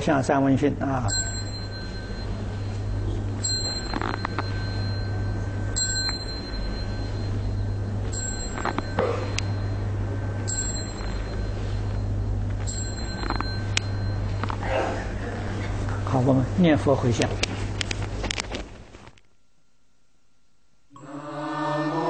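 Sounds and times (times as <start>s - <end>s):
steady low hum: 0.0s - 22.0s
small high-pitched bell struck: 1.0s - 14.6s.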